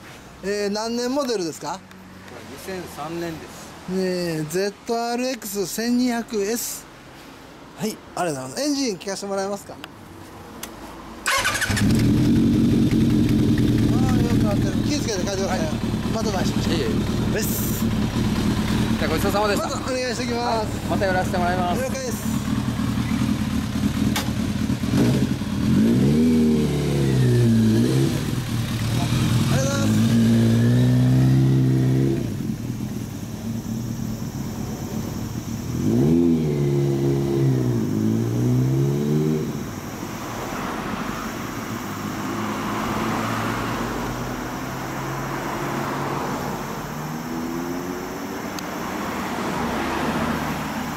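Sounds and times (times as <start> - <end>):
street traffic: 0.0 - 50.9
motorcycle engine revving: 11.3 - 40.1, 41.2 - 46.1, 46.9 - 50.9.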